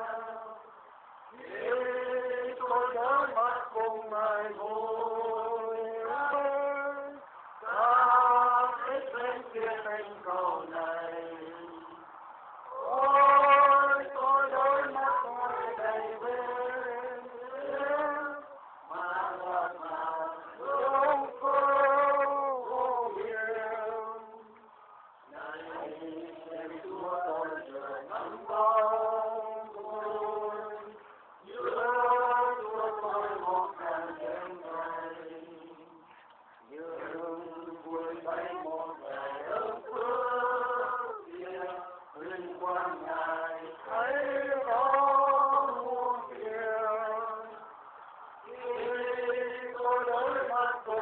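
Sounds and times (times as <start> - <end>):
group singing a slow hymn: 0.0 - 51.0.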